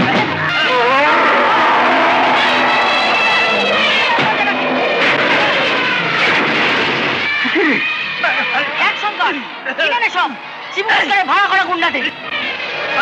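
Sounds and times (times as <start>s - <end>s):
people shouting and crying out: 0.1s - 13.0s.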